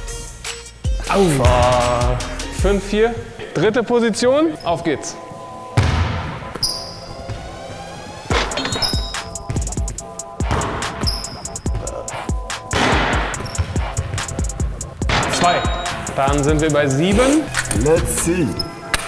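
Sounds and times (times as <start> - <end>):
background music: 0.0 - 19.0
shoe squeaks: 6.4 - 19.0
basketball bouncing on wooden floor: 8.3 - 12.0, 12.7 - 15.9.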